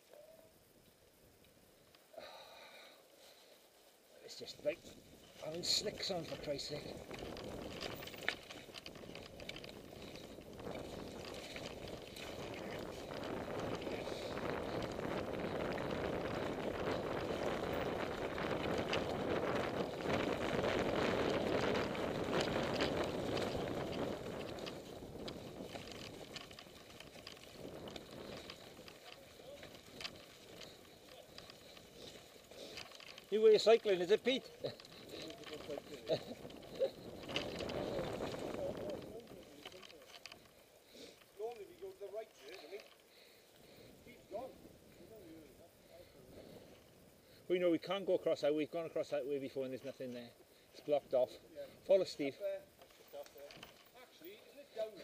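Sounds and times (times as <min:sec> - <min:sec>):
bike tyres rushing: 0:03.2 - 0:55.0
wind noise: 0:04.6 - 0:33.2, 0:34.4 - 0:40.0
bike knocks and rattles: 0:05.6 - 0:40.4.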